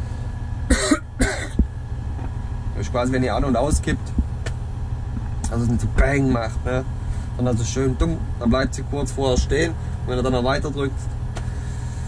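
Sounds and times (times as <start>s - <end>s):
diesel engine rumble: 0.0s - 12.0s
man coughing: 0.7s - 1.6s.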